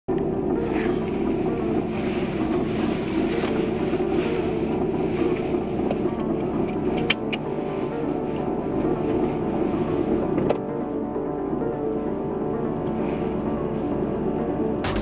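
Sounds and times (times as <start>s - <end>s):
car engine idling: 0.1s - 15.0s.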